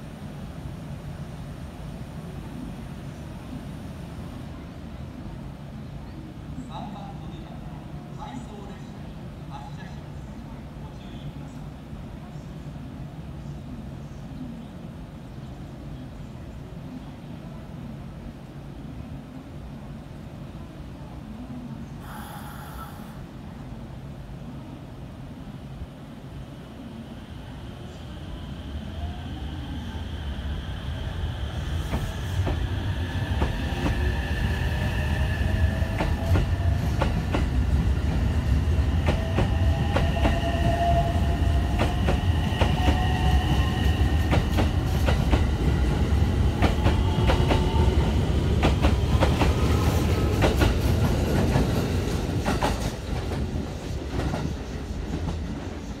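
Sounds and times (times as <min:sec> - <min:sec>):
train rumble: 0:00.0 - 0:56.0.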